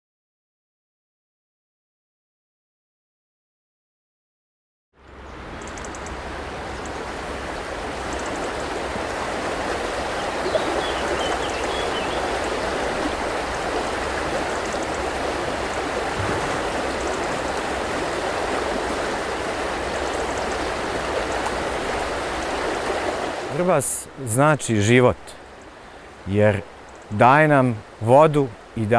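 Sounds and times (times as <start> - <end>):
river water flowing over rocks: 5.4 - 28.9.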